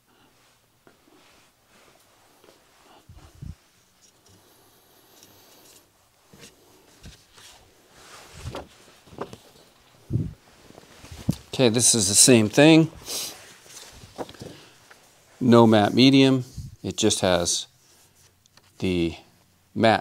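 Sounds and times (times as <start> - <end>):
knocks and rustles of handling: 5.2 - 11.6, 13.4 - 15.1.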